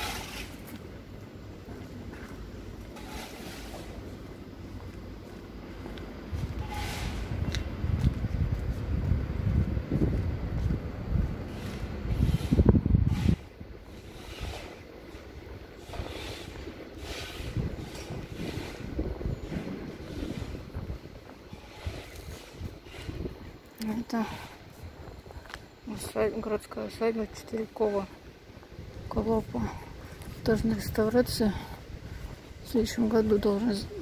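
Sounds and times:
faint footsteps: 0.0 - 34.0
wind buffeting microphone: 3.8 - 34.0.

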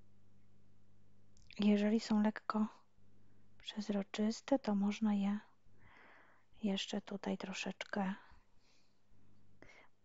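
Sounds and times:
faint steady hum: 0.0 - 10.0
woman speaking quietly: 6.6 - 8.3.

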